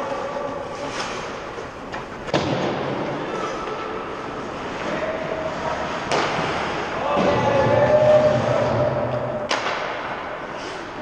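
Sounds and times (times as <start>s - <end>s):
sharp puck impacts in rink: 4.8s - 10.3s
distant players shouting: 6.9s - 9.5s.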